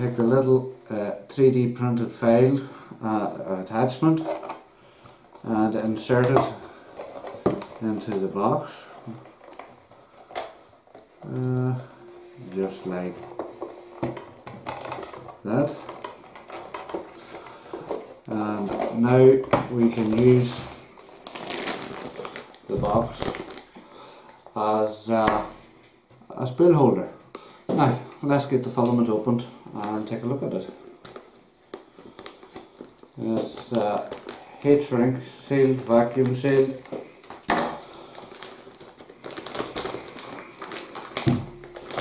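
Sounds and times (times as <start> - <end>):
plastic bag crinkling: 3.6 - 24.0, 29.7 - 42.0.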